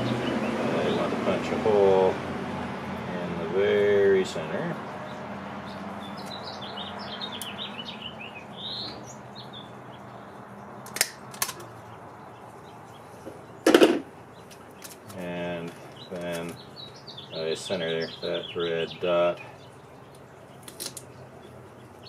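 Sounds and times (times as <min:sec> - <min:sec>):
small bird chirping: 0:05.0 - 0:10.8, 0:11.6 - 0:22.0.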